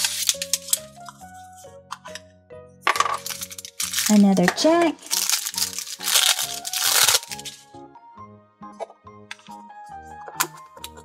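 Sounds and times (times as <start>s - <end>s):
plastic wrapper crinkling: 0.0s - 1.2s, 3.2s - 7.7s
background music: 0.0s - 11.0s.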